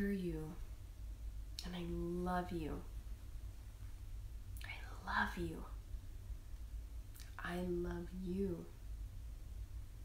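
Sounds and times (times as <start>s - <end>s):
woman speaking quietly: 0.0s - 0.6s, 1.6s - 2.9s, 4.6s - 5.8s, 7.2s - 8.8s
faint room noise: 0.0s - 10.0s
low steady hum: 0.0s - 10.0s.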